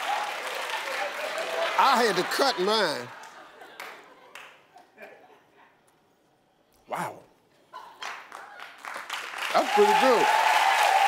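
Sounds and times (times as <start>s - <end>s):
studio audience applauding: 0.0s - 4.6s, 8.0s - 11.0s
man saying wow: 6.9s - 7.3s, 9.6s - 10.4s.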